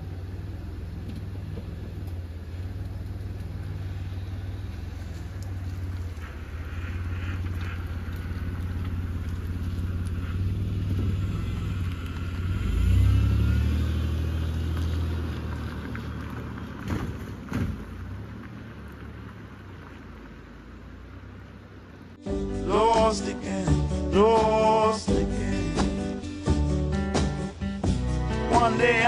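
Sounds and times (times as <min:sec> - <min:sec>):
wheels spinning on gravel: 0:00.0 - 0:20.7
car engine revving: 0:00.0 - 0:29.0.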